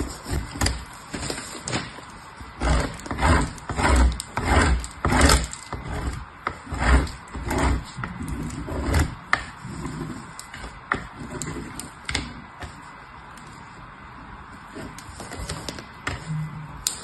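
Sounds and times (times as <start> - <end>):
soap scraping on box grater: 2.5 - 12.4.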